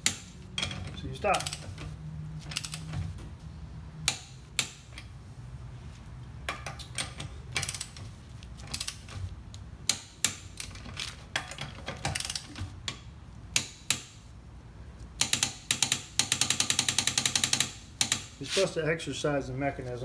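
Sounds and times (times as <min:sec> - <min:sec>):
torque wrench clicking: 0:15.2 - 0:18.3.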